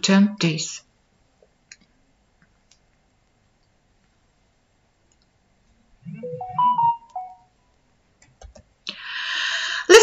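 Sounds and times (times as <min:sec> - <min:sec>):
electronic notification chime: 0:06.1 - 0:07.4.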